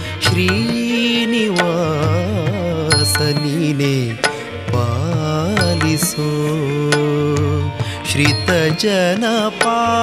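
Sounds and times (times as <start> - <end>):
gliding devotional melody: 0.0 - 10.0.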